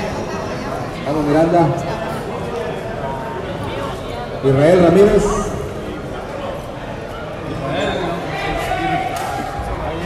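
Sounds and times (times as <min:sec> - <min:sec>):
crowd chatter in echoing room: 0:00.0 - 0:10.0.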